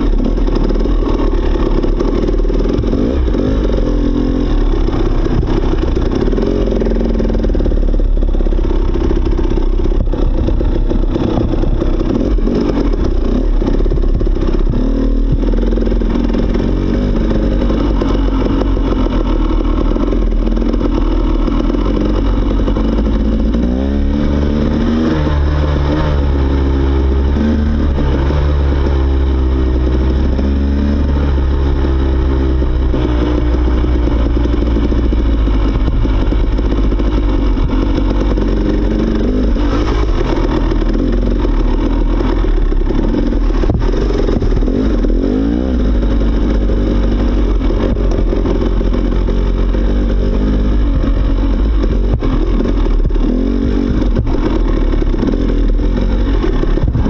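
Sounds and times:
dirt bike engine running: 0:00.0 - 0:57.0.

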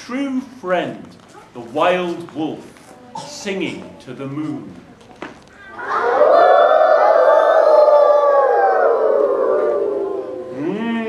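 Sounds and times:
man imitating wolf howl: 0:06.4 - 0:11.0.

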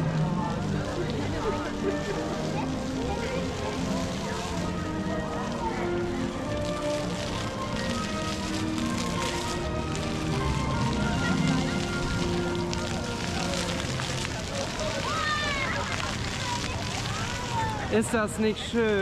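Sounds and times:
music of long held notes: 0:00.0 - 0:17.9
distant voices: 0:00.0 - 0:19.0
fountain jets splashing: 0:00.0 - 0:19.0.

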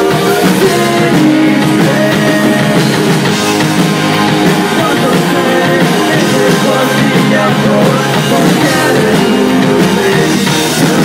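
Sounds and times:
punk rock band playing live: 0:00.0 - 0:11.0.

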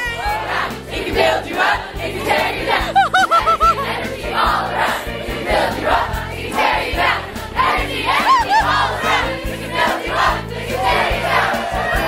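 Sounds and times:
instrumental accompaniment with bass: 0:00.0 - 0:12.0
choir singing: 0:00.1 - 0:12.0.

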